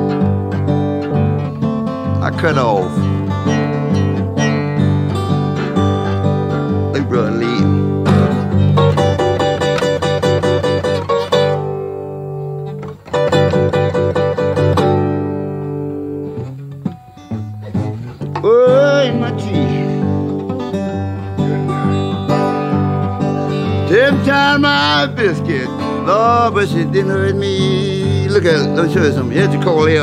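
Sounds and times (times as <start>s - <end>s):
solo acoustic blues guitar: 0.0s - 30.0s.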